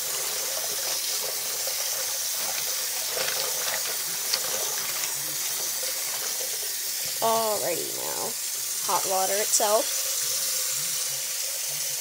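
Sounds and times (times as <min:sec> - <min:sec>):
faucet water running into sink: 0:00.0 - 0:12.0.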